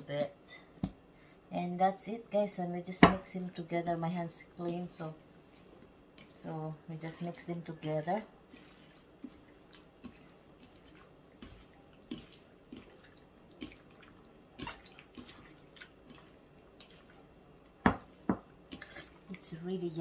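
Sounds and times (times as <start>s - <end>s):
hands mixing wet fish in bowl: 3.2s - 20.0s.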